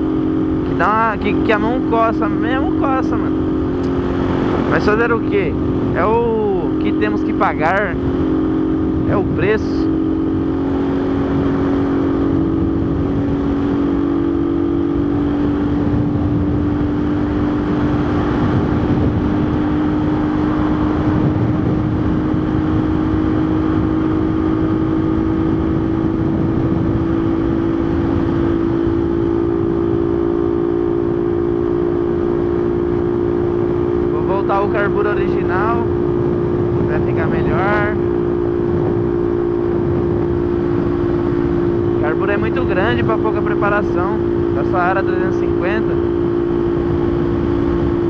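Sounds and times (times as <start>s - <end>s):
motorcycle engine cruising: 0.0s - 48.0s
wind noise on microphone: 0.0s - 48.0s.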